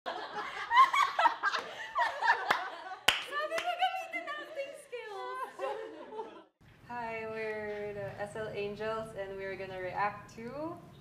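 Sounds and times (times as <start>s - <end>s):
sharp clap: 2.5s - 3.8s.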